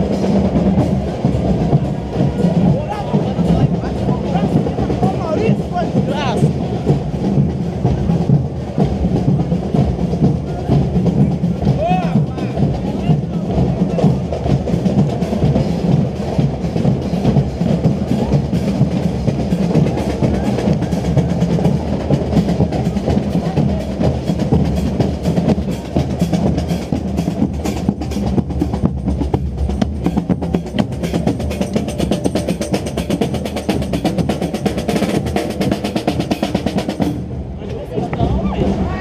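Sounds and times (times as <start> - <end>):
voices of people: 0.0 - 28.6, 29.6 - 39.0
marching band drums: 0.0 - 39.0.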